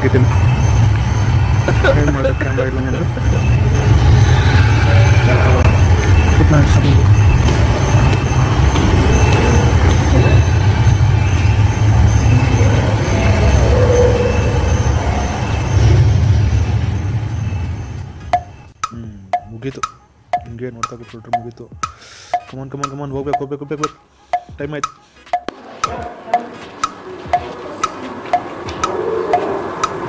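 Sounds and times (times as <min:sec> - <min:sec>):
loud rushing noise with rumble: 0:00.0 - 0:18.2
pitched wood block knocks: 0:18.4 - 0:26.0.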